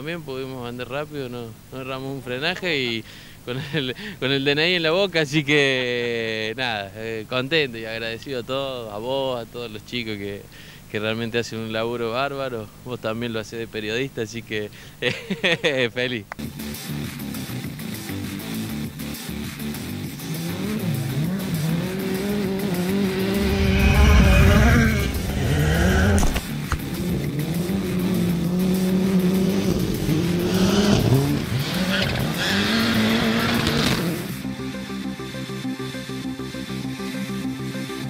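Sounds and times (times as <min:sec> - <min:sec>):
background music: 0:16.4 - 0:38.0
rally car engines revving: 0:19.7 - 0:34.4
gravel spraying from tyres: 0:28.7 - 0:34.3.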